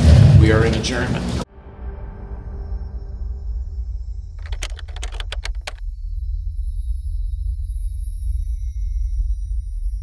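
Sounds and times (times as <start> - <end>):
low bass drone: 1.9 - 10.0
keyboard typing clicks: 4.4 - 5.8.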